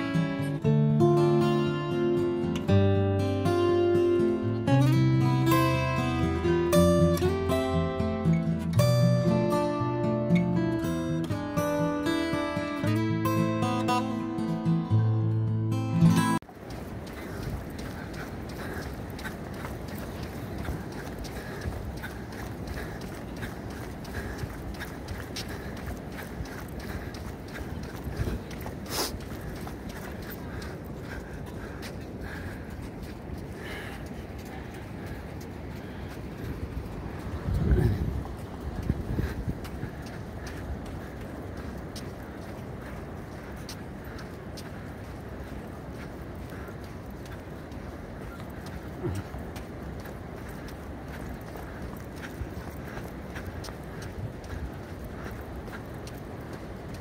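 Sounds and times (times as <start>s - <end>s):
strummed acoustic guitar music: 0.0s - 16.4s
outdoor background noise: 0.0s - 57.0s.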